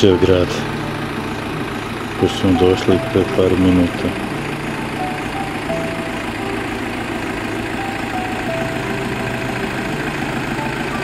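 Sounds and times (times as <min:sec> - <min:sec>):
bus engine rumbling: 0:00.0 - 0:11.0.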